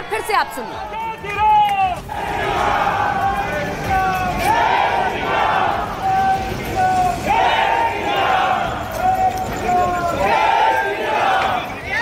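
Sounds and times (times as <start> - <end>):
crowd shouting slogans: 0.0 - 12.0.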